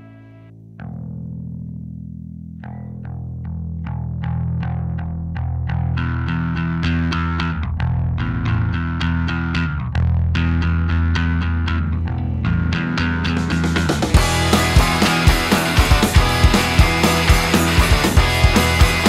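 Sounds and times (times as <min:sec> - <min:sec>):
held bass note: 0:09.3 - 0:19.0
sharp guitar strikes: 0:10.4 - 0:19.0
blues rock band playing: 0:11.0 - 0:19.0.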